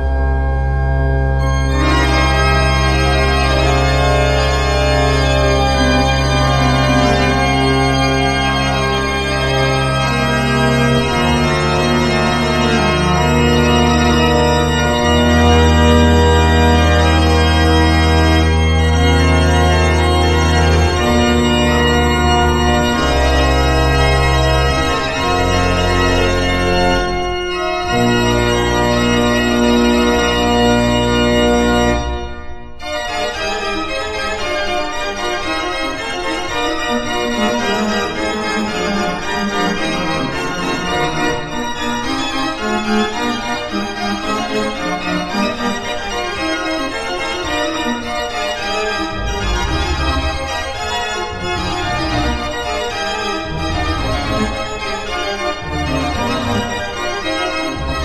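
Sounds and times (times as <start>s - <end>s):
pipe organ playing: 0.0s - 58.0s.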